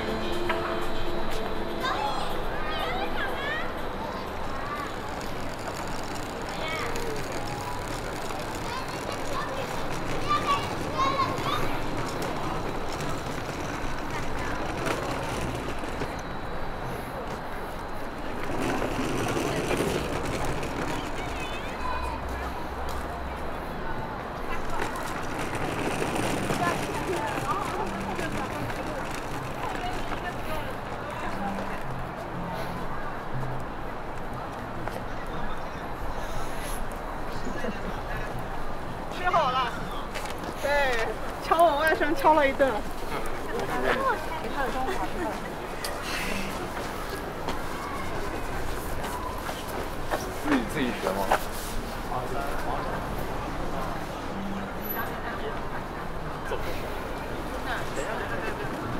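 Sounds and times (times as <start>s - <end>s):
background music with low notes: 0.0s - 4.5s
people talking indistinctly: 0.0s - 33.8s.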